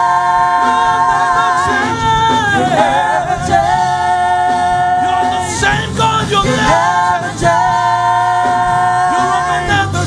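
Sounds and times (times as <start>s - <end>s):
gospel group singing a cappella: 0.0s - 10.0s.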